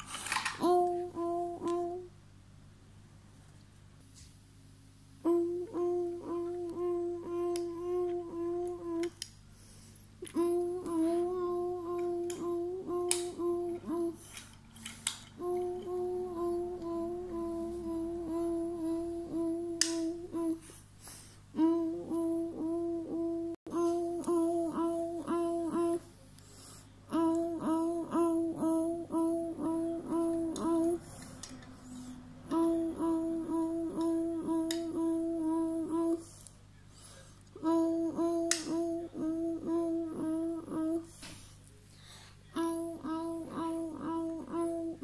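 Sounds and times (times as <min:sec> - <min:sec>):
child humming in pulses: 0:00.0 - 0:02.2, 0:05.2 - 0:09.2, 0:10.2 - 0:14.4, 0:15.3 - 0:20.8, 0:21.5 - 0:26.2, 0:27.1 - 0:36.4, 0:37.6 - 0:41.2, 0:42.6 - 0:45.0.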